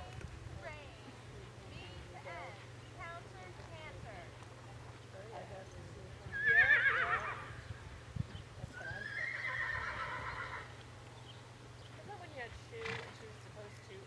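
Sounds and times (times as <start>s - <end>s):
horse whinnying: 6.3s - 7.6s, 8.8s - 10.7s.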